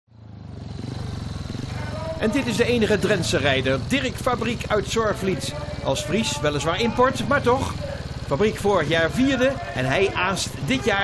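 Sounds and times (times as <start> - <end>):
motorcycle engine running: 0.1 - 11.0
faint voices: 1.3 - 11.0.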